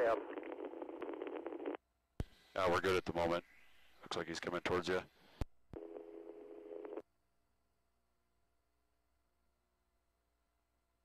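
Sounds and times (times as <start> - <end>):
steady low radio tone: 0.0 - 7.0.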